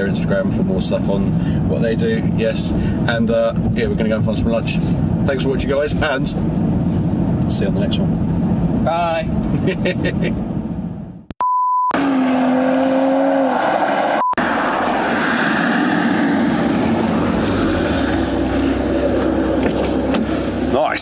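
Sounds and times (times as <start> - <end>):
wind and road noise: 0.0 - 11.3, 12.0 - 21.0
short steady beep: 11.4 - 12.0
car engine running: 16.2 - 21.0.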